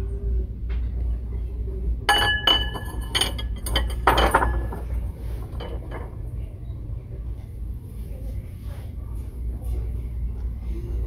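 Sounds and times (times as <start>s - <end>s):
stoneware bowls clinking: 2.1s - 4.9s.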